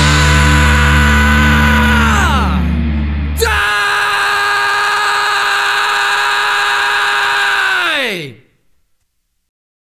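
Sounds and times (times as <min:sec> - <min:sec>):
sustained rock guitar note: 0:00.0 - 0:04.6.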